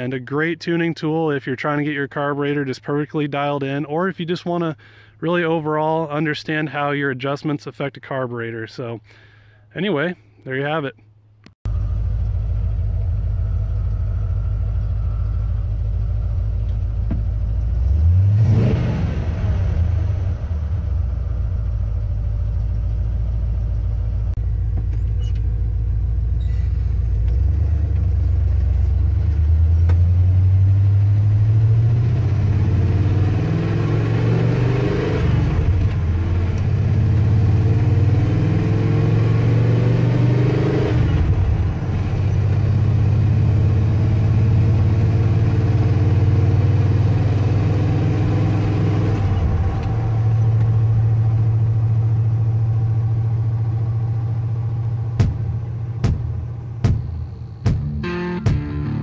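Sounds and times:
pickup truck engine accelerating: 11.7s - 59.0s.

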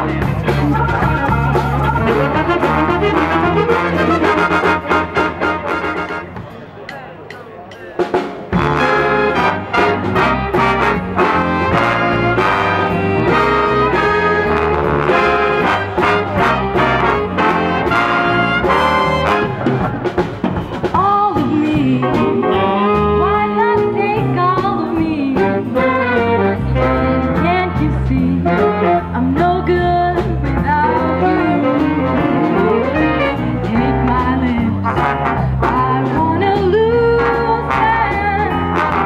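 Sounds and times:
big band jazz: 0.0s - 6.6s, 8.0s - 39.0s.

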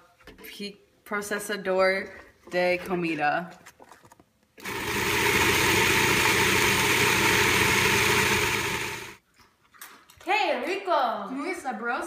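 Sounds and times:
food processor motor running: 4.6s - 9.2s.

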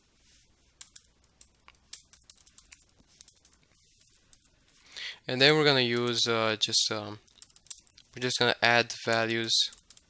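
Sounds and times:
typing on computer keyboard: 0.8s - 4.5s, 7.2s - 8.3s, 9.0s - 10.0s.

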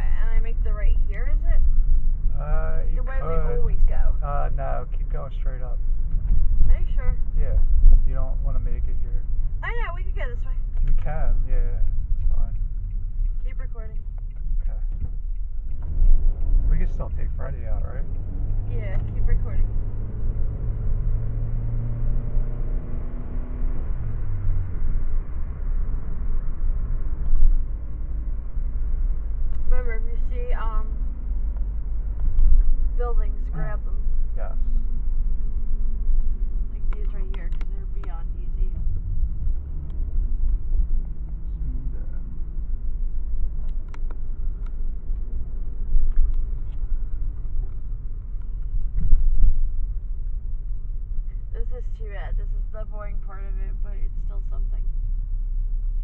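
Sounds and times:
car engine hum: 0.0s - 56.0s
road noise: 0.0s - 56.0s.

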